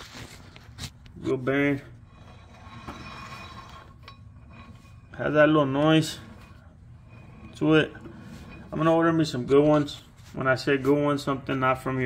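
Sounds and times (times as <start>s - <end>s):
wheel bearing whirring: 1.3s - 10.0s.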